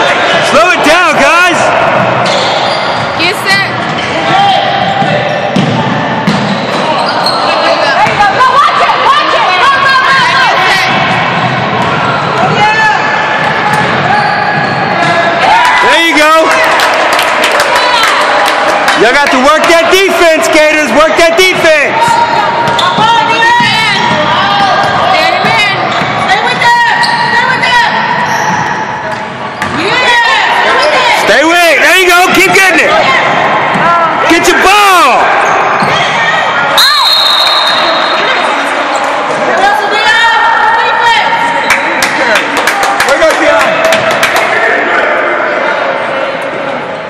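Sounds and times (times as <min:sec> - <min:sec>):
sneakers squeaking: 0:01.8 - 0:15.4, 0:22.0 - 0:31.3, 0:35.3 - 0:39.4
basketball bouncing on court: 0:02.9 - 0:06.9, 0:22.0 - 0:27.2.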